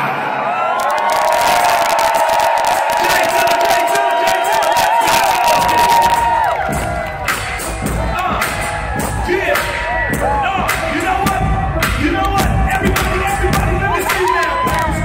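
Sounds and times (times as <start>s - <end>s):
crowd cheering and whooping: 0.0s - 15.0s
hip-hop music through a pa: 1.9s - 15.0s.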